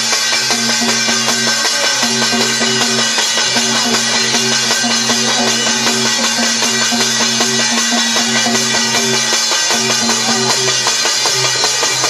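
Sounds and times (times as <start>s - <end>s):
brass plate struck with stick: 0.0s - 12.0s
hand drum: 0.0s - 12.0s.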